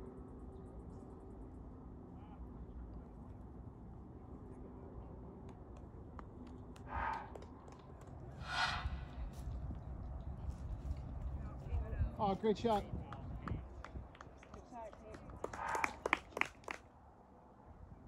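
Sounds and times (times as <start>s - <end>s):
low outdoor background: 0.0s - 18.0s.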